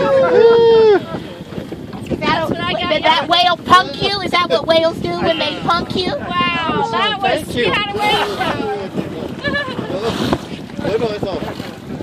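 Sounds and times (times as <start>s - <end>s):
water sloshing against hull: 0.0s - 12.0s
wind buffeting microphone: 0.0s - 12.0s
laughter: 9.4s - 10.0s.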